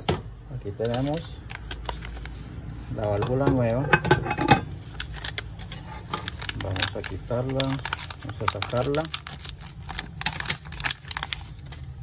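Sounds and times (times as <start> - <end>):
plastic bag crinkling: 0.8 - 2.5, 4.8 - 12.0.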